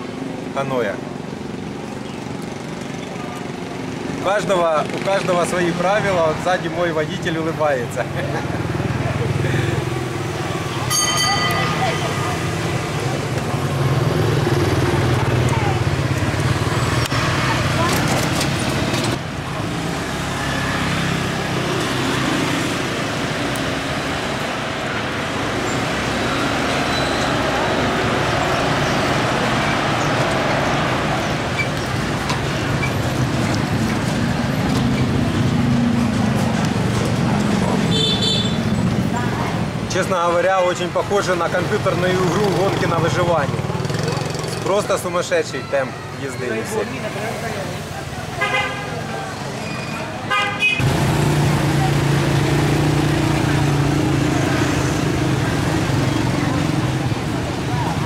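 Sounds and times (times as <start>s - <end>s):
motorbike and scooter traffic: 0.0s - 58.0s.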